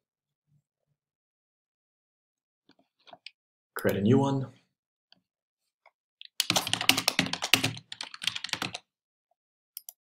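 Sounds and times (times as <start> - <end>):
typing on computer keyboard: 6.2 - 8.9.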